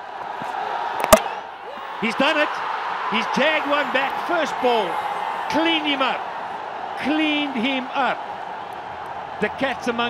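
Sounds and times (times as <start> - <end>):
crowd cheering: 0.0 - 10.0
stadium crowd noise: 0.0 - 10.0
ball cracking against stumps: 1.0 - 1.3.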